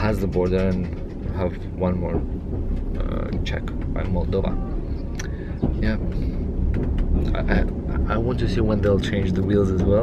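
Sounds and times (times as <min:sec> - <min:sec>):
train carriage rumble: 0:00.0 - 0:10.0.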